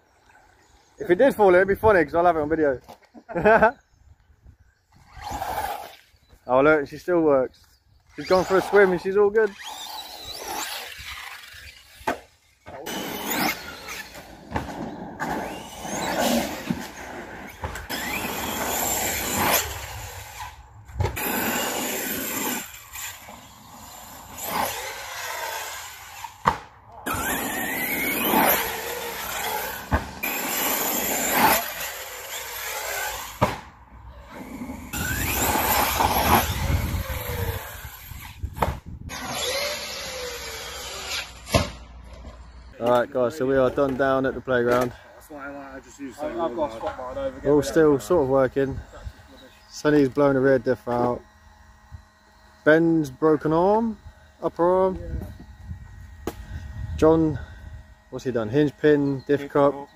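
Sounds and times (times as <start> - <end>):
electric motors whining: 4.8 - 59.9.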